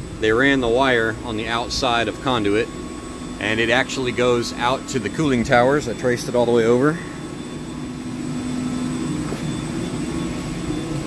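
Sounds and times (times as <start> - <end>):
machinery drone with low hum: 0.0 - 11.0.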